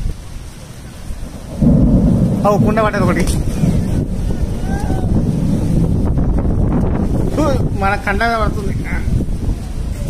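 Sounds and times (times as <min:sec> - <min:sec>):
low rumble of thunder: 0:00.0 - 0:10.0
rain: 0:00.0 - 0:10.0.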